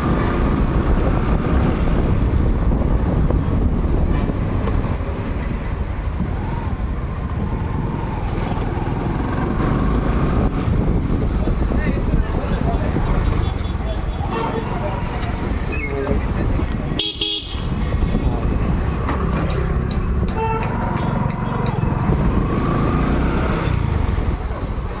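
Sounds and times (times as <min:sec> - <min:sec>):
people talking: 0:11.7 - 0:17.0
vehicle horn tooting: 0:13.4 - 0:15.0, 0:17.0 - 0:17.7.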